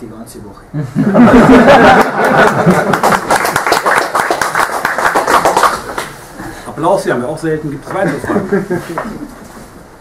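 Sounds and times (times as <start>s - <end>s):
people laughing: 0.8s - 3.7s, 8.0s - 9.5s
people clapping: 1.7s - 6.2s.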